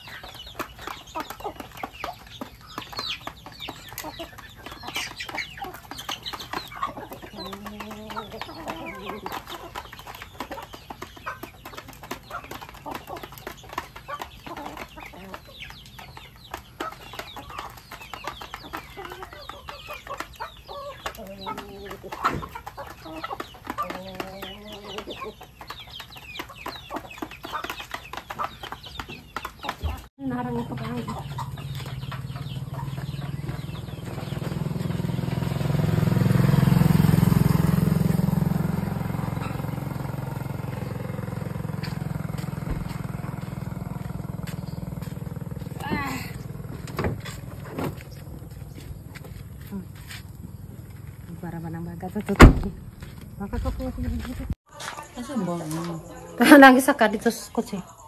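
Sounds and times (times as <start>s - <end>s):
chicks peeping: 0.0s - 58.0s
hens clucking: 0.0s - 58.0s.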